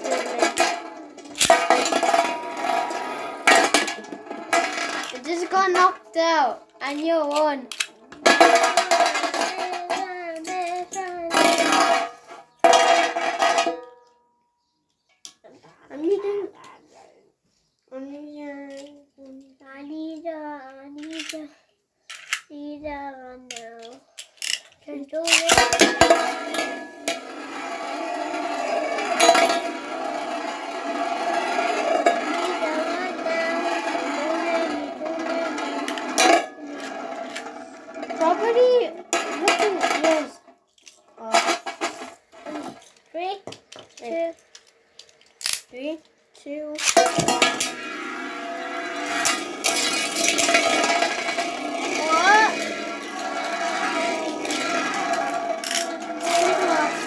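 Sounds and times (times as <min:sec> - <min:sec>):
children's voices: 0:00.0 - 0:03.5, 0:04.9 - 0:07.7, 0:08.9 - 0:11.8, 0:15.5 - 0:17.3, 0:17.9 - 0:21.5, 0:30.6 - 0:37.6, 0:38.2 - 0:40.4, 0:50.4 - 0:57.0
spinning tops whirring on metal: 0:00.0 - 0:13.7, 0:23.5 - 0:40.4, 0:46.8 - 0:57.0
spinning tops clashing: 0:00.0 - 0:13.8, 0:23.5 - 0:40.4, 0:46.8 - 0:57.0.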